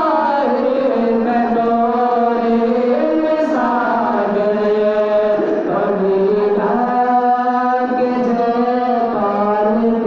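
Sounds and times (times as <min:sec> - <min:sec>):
two men singing unaccompanied: 0:00.0 - 0:10.0.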